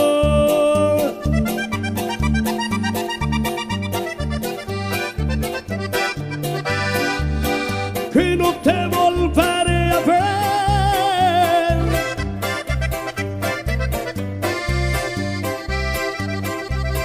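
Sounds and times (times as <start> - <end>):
person singing wavering notes: 0.0 - 4.4
accordion melody: 0.0 - 17.0
bass line: 0.0 - 17.0.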